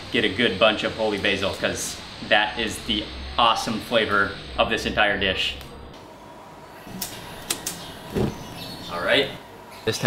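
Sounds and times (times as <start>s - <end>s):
burner ignition thump: 6.9s - 8.6s.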